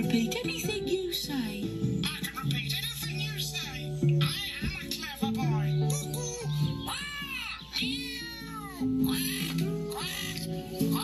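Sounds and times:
background music: 0.0 - 11.0
cartoon parrot calls: 6.1 - 11.0.

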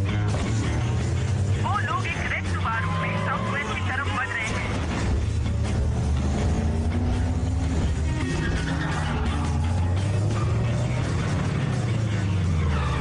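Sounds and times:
car engine running: 0.0 - 13.0
film soundtrack music: 0.0 - 13.0.

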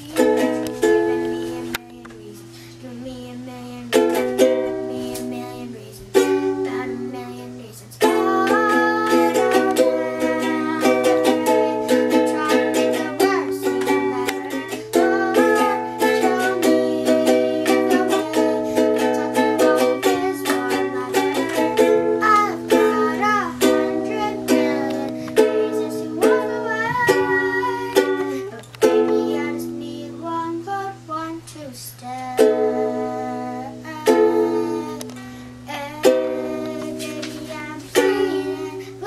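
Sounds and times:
ukulele strumming chords: 0.0 - 2.4, 3.7 - 39.0.

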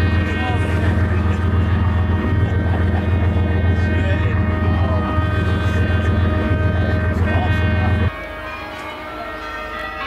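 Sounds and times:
boat engines droning: 0.0 - 10.0.

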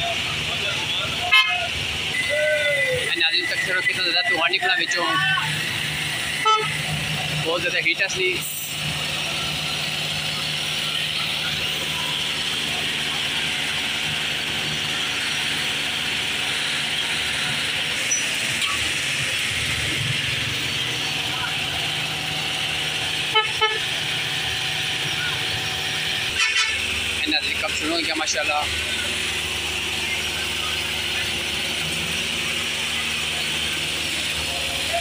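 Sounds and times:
diesel engines of paving machinery: 0.0 - 35.0
horn toots: 1.2 - 3.0, 6.3 - 7.0, 23.2 - 24.0, 26.2 - 27.0.

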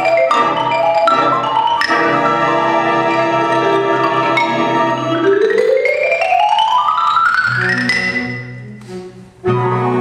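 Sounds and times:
marimba fast rising run: 0.0 - 8.5.

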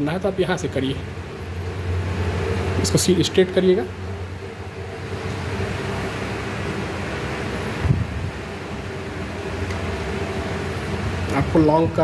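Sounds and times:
mechanical hum: 0.0 - 12.0.

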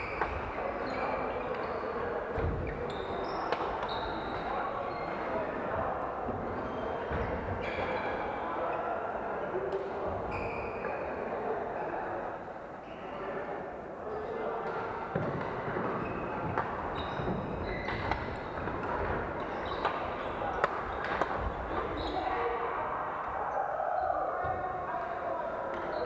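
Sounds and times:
shoe squeaks on wooden court: 0.0 - 5.3, 6.6 - 8.2, 10.3 - 11.0, 15.9 - 18.7, 19.4 - 20.2, 20.9 - 22.4
murmur of voices: 0.0 - 26.0.

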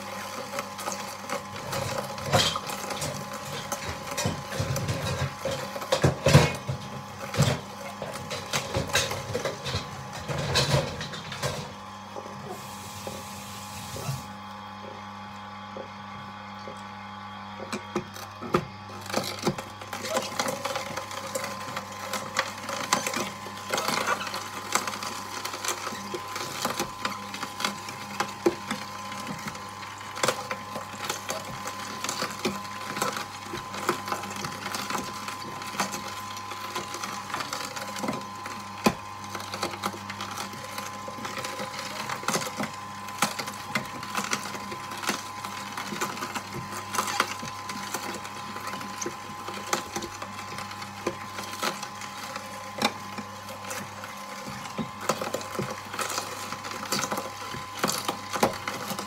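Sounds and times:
juicer motor hum: 0.0 - 59.0
vegetables crunching and crackling: 16.7 - 59.0.

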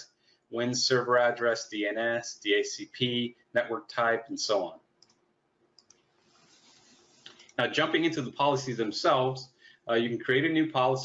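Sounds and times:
faint computer mouse clicks: 5.0 - 5.2, 5.8 - 6.1.

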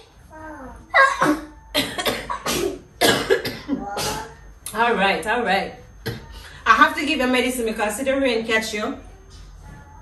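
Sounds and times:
person coughing: 1.0 - 4.3.

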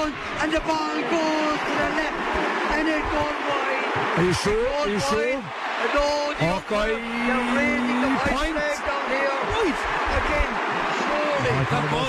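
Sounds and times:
excited commentary voices: 0.0 - 12.0
stadium crowd noise: 0.0 - 12.0.

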